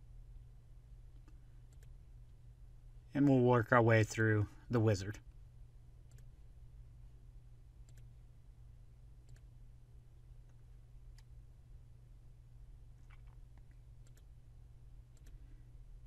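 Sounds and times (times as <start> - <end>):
low steady hum: 0.0 - 16.0
computer mouse click: 1.1 - 2.0, 6.1 - 6.3, 7.8 - 8.2, 9.2 - 9.5, 10.4 - 11.3, 13.0 - 14.3, 15.1 - 15.4.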